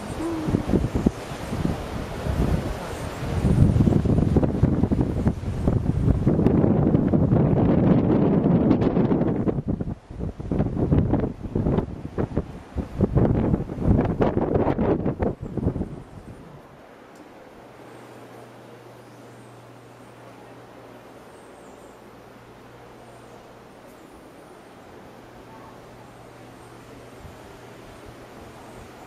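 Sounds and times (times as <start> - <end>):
wind buffeting microphone: 0.0 - 16.8.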